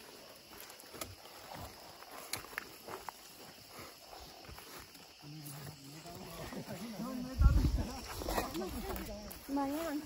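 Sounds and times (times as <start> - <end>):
footsteps through grass: 0.0 - 10.0.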